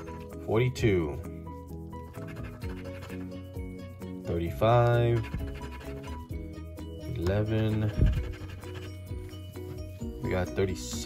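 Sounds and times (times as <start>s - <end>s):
background music with sustained notes: 0.0s - 11.0s
coin scratching a lottery ticket: 2.0s - 3.5s, 4.6s - 6.4s, 7.2s - 9.1s.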